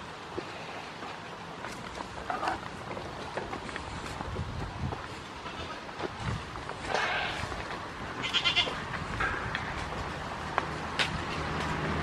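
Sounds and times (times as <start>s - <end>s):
goat kid bleating: 5.4s - 5.9s, 6.9s - 7.6s, 8.2s - 8.8s.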